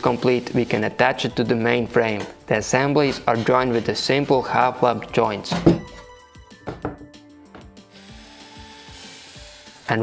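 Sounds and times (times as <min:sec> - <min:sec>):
soft background music: 0:00.0 - 0:10.0
wooden parts knocking: 0:06.6 - 0:07.7.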